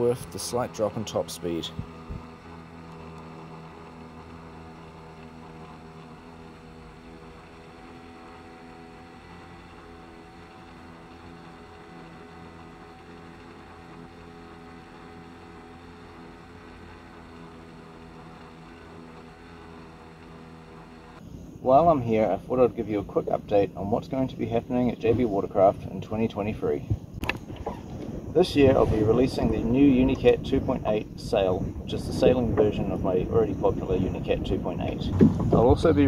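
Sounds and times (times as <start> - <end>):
outboard motor droning: 0.0 - 36.0.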